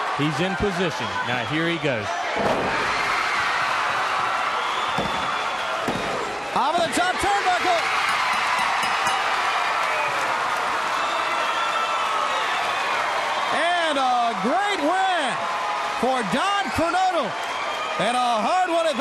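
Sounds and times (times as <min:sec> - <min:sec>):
arena crowd noise: 0:00.0 - 0:19.0
crowd shouting: 0:00.0 - 0:19.0.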